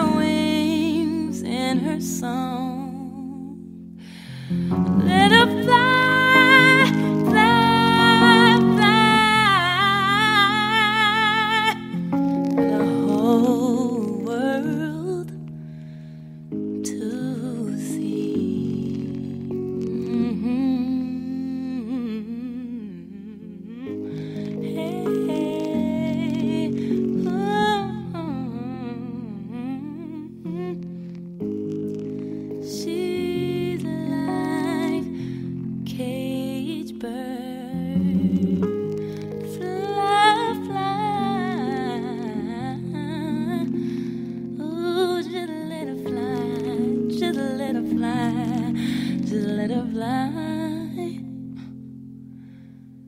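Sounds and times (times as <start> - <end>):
high voice singing ballad: 0.0 - 15.8, 16.6 - 31.1, 32.0 - 51.8
held chords: 0.0 - 53.0
person humming a melody: 17.0 - 30.9, 36.2 - 43.8.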